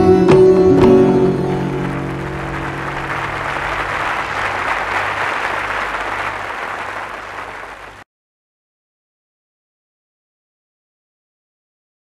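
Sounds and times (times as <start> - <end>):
sustained harmonium notes: 0.0 - 7.9
audience applauding: 0.9 - 8.0.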